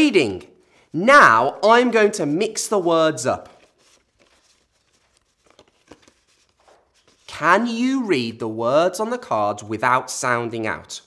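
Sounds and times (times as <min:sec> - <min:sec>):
paper cards being shuffled: 0:02.0 - 0:07.6.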